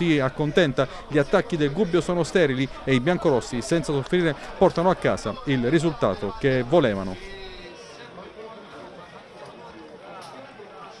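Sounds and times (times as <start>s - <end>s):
voices calling out: 0.0s - 8.0s
football ground crowd noise: 0.0s - 11.0s.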